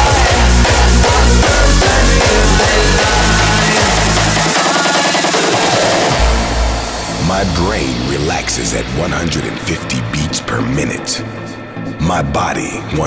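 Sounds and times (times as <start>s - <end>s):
heavy kick drum and bass: 0.0s - 10.3s
hardstyle dance music: 0.0s - 12.0s
voice over music: 0.0s - 13.0s.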